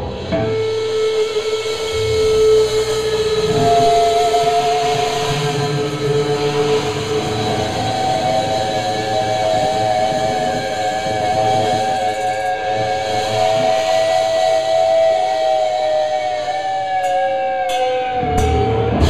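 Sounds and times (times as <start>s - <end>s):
electric guitar feedback whine: 0.0s - 19.0s.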